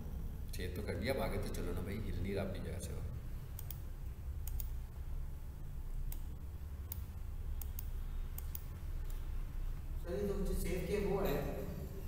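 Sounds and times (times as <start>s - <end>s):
low room hum: 0.0s - 12.0s
computer mouse clicking: 3.5s - 4.8s, 6.0s - 9.3s.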